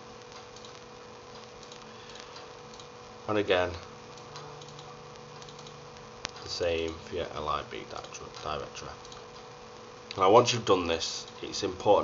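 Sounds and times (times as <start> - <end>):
electrical hum: 0.0 - 12.0
steady hiss: 0.0 - 12.0
faint clicks: 0.2 - 2.9, 4.1 - 7.0.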